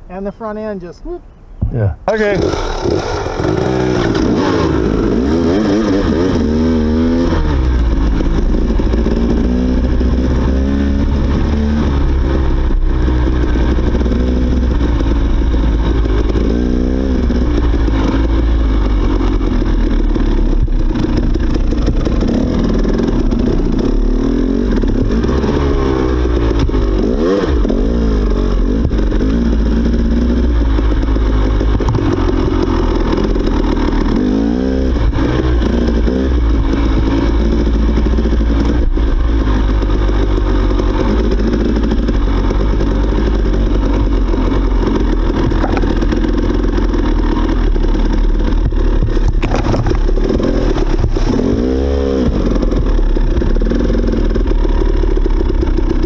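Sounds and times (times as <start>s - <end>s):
dirt bike engine revving: 1.7s - 56.0s.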